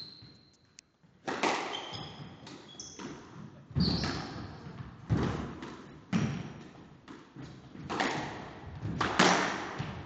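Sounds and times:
squash ball hits echoing: 1.2s - 10.0s.

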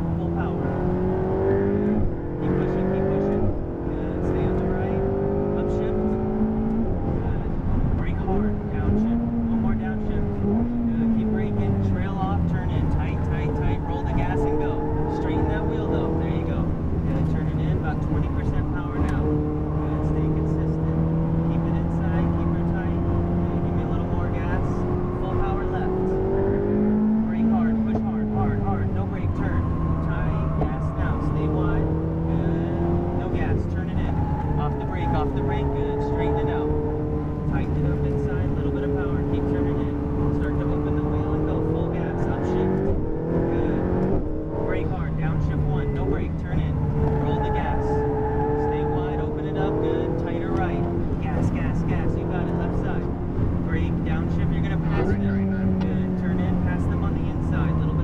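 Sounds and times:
sports car engine from inside: 0.0s - 58.0s.

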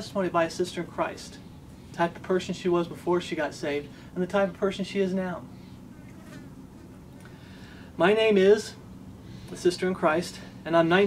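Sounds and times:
speech: 0.0s - 1.4s, 2.0s - 5.5s, 8.0s - 8.8s, 9.5s - 11.0s.

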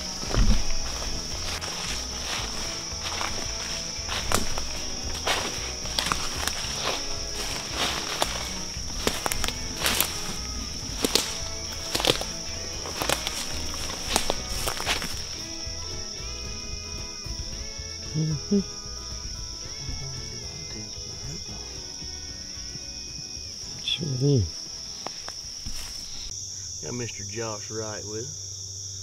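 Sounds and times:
footsteps in dry leaves: 0.0s - 16.1s, 24.4s - 26.4s
background music: 0.0s - 26.2s
high-pitched insect drone: 0.0s - 29.0s.

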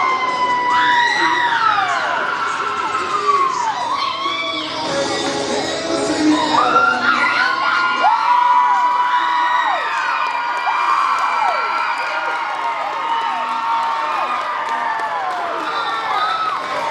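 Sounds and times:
high-pitched whoops and shouts: 0.0s - 5.0s, 6.0s - 16.9s
crowd cheering: 0.0s - 5.3s, 6.0s - 16.9s.

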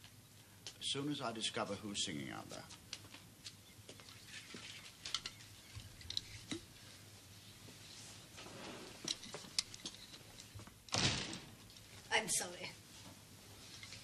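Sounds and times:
light footsteps: 2.2s - 6.0s
small clicks and knocks: 2.8s - 6.7s.

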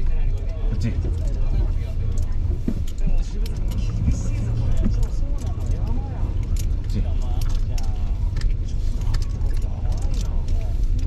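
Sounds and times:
car engine and road rumble: 0.0s - 11.0s
raindrops ticking on car body: 0.0s - 11.0s.

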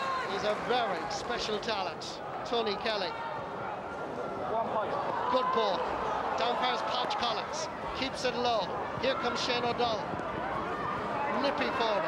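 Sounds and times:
outdoor stadium noise: 0.0s - 12.0s
man talking: 11.3s - 12.0s.

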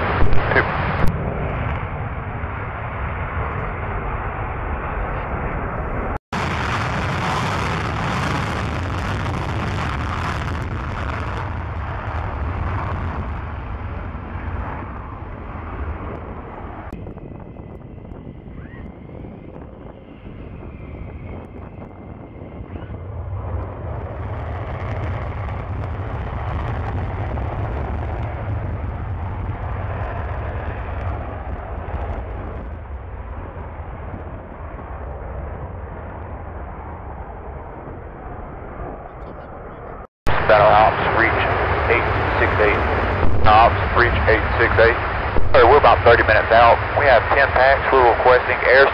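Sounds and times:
fighter jets taking off: 0.0s - 48.9s.

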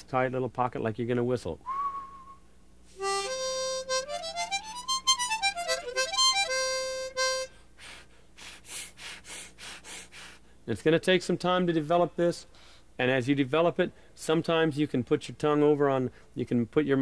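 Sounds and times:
harmonica playing single notes: 3.0s - 7.9s
breathy puffs: 7.2s - 10.6s.

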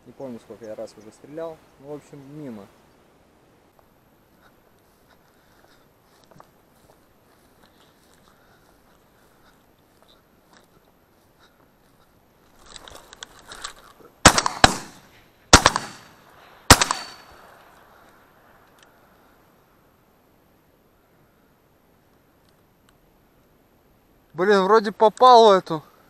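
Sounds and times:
rustle of movement: 0.0s - 26.0s
shotgun shots with echo: 14.2s - 17.6s.

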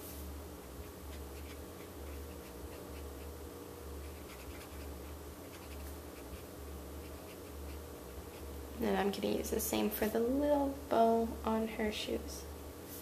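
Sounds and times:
marker stroking on paper: 4.0s - 6.4s.

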